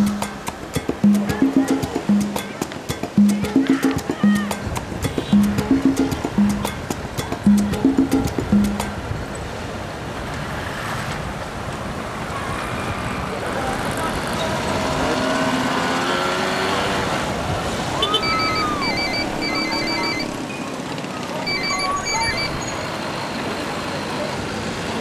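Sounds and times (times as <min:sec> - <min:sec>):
street traffic: 0:00.0 - 0:25.0
quick electronic beeps: 0:07.4 - 0:09.0, 0:18.1 - 0:20.6, 0:21.4 - 0:22.8.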